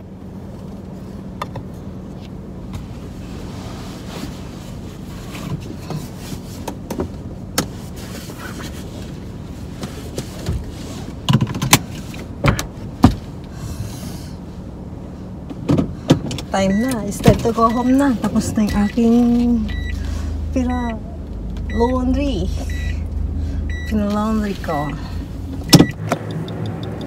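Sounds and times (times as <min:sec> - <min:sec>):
car cabin hum: 0:00.0 - 0:27.0
clicks and knocks of movement in seat: 0:04.0 - 0:13.6.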